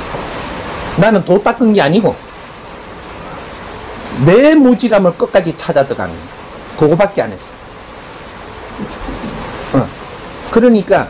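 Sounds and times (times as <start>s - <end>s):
rushing water: 0.0s - 11.0s
man speaking: 4.2s - 7.6s, 9.7s - 11.0s.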